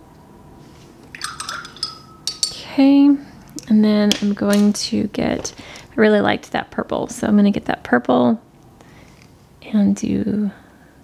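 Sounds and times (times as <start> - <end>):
brush clinking on glass jar: 1.1 - 2.9.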